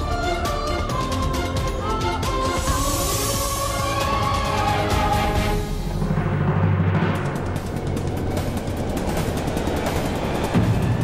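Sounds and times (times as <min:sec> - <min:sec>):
dramatic background score: 0:00.0 - 0:11.0.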